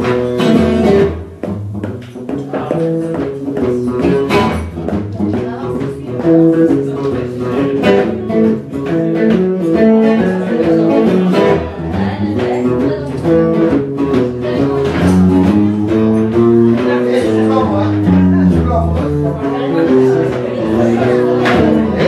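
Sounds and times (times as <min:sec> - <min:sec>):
electric guitar picking and chords: 0:00.0 - 0:22.0
low bass notes: 0:02.6 - 0:22.0.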